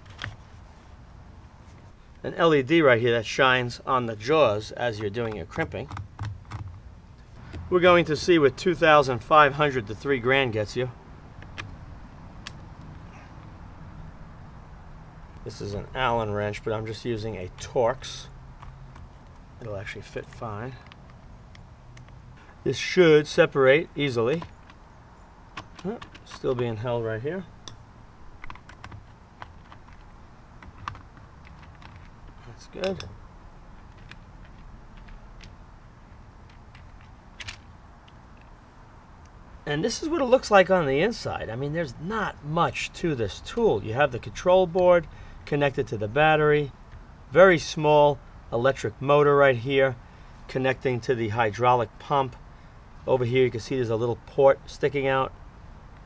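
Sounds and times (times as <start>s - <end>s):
low steady background noise: 0.0s - 56.0s
low steady rumble: 0.0s - 56.0s.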